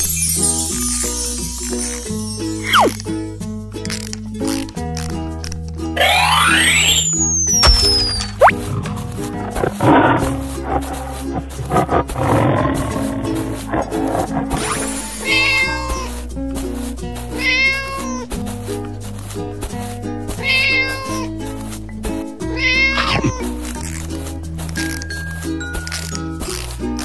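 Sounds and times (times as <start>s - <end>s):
cheerful children's music: 0.0s - 27.0s
growl-like animal sounds: 8.2s - 16.1s, 22.8s - 23.5s
cartoon cat meows: 15.2s - 16.1s, 17.4s - 18.2s, 20.4s - 21.3s, 22.6s - 23.5s.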